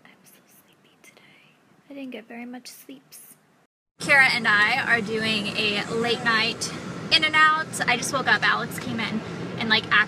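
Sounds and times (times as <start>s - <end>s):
woman whispering: 0.0s - 3.4s.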